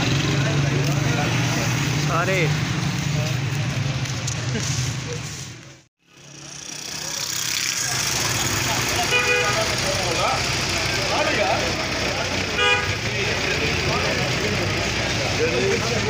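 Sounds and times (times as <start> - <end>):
crowd talking: 0.0 - 16.0
low street rumble: 0.0 - 16.0
vehicle horn toots: 8.9 - 10.0, 12.5 - 13.1.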